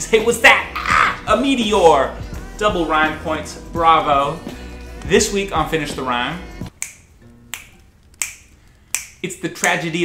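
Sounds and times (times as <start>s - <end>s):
finger snaps: 6.7s - 9.8s.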